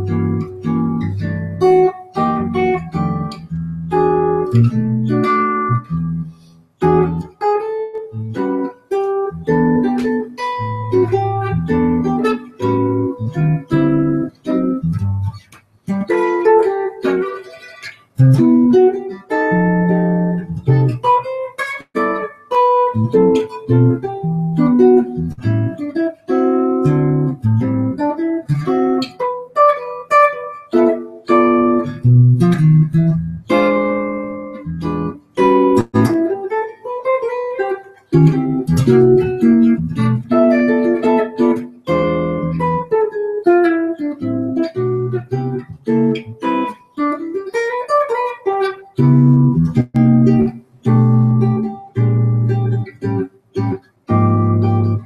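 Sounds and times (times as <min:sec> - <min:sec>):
solo jazz guitar: 0:00.0 - 0:55.0.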